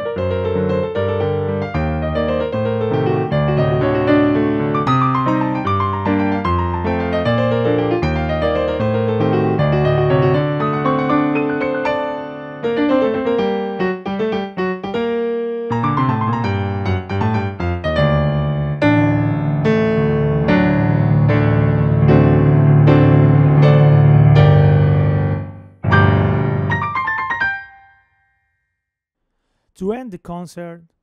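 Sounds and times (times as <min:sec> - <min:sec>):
digital piano playing: 0:00.0 - 0:28.0.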